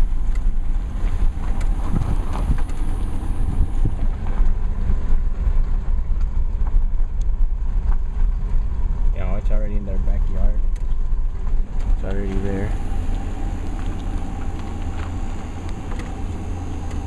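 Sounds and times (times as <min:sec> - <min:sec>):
car rolling on dirt road: 0:00.0 - 0:17.0
wind buffeting microphone: 0:00.0 - 0:17.0.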